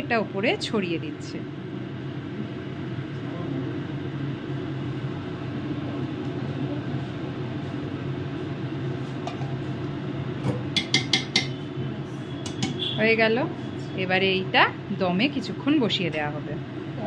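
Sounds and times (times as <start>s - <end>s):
steady low hum: 0.0s - 17.0s
metal cookware clinking: 10.7s - 11.6s, 12.4s - 12.8s.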